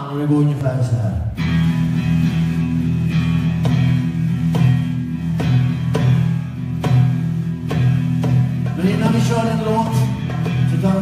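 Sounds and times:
band playing electric guitar and bass: 0:00.0 - 0:11.0.

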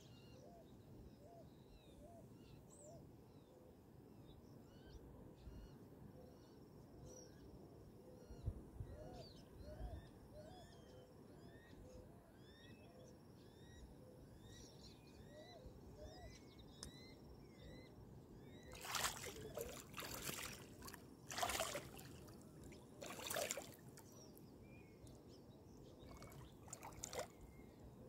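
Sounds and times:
birds chirping: 0:18.6 - 0:25.0.

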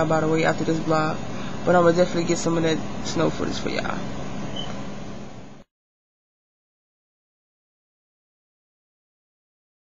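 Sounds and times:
low room hum: 0:00.0 - 0:05.7.

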